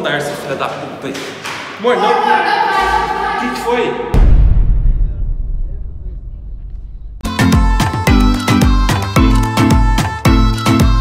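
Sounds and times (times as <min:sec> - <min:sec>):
deep boom low rumble: 0:04.1 - 0:07.3.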